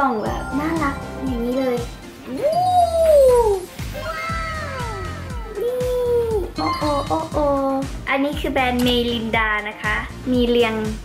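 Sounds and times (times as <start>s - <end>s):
music with steady beat: 0.3s - 11.0s
swooping meow-like melody: 2.2s - 7.4s.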